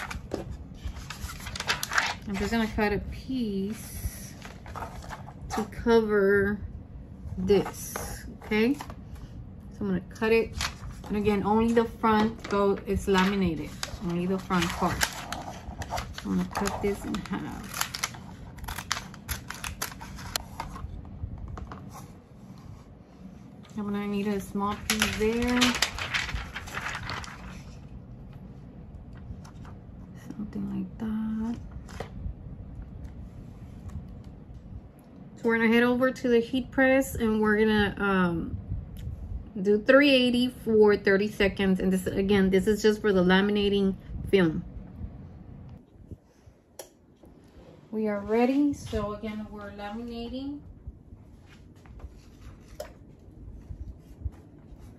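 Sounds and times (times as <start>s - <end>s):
faint handling sounds: 0.0s - 2.8s, 10.4s - 30.3s
plastic film clicks and crinkles: 12.4s - 20.4s, 24.7s - 27.6s.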